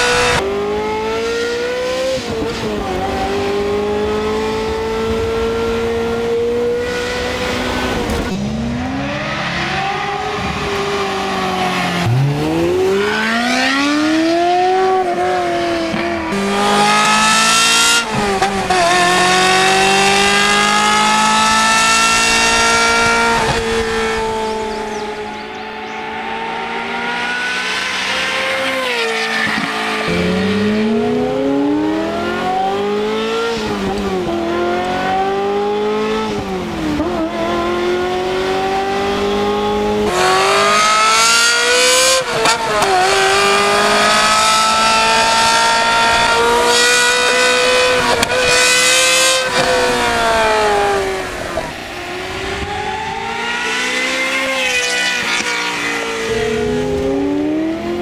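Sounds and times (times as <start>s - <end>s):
sports car engine accelerating: 0.0s - 58.0s.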